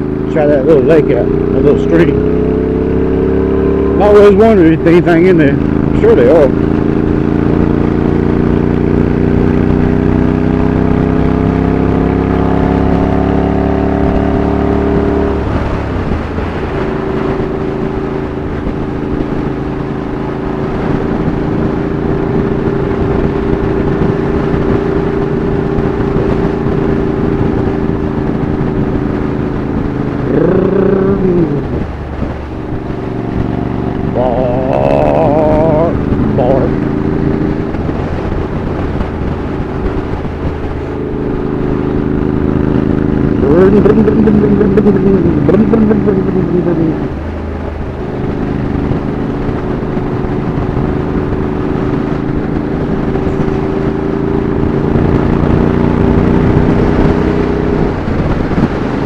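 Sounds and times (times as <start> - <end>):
motorcycle engine: 0.0 - 59.0.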